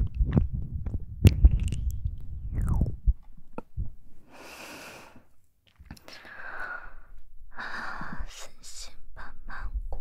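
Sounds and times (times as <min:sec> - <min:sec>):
woman's breathy puffs: 0:04.2 - 0:05.3, 0:06.0 - 0:08.4.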